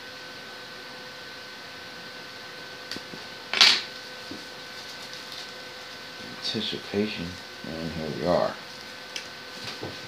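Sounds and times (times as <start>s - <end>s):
faint electrical hum: 0.0s - 10.0s
plastic wrap crinkling: 3.9s - 6.0s.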